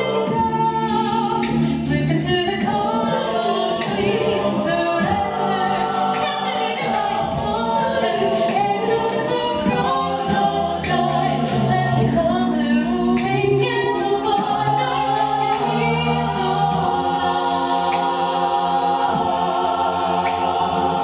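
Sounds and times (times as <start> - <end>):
a cappella group singing: 0.0 - 21.0.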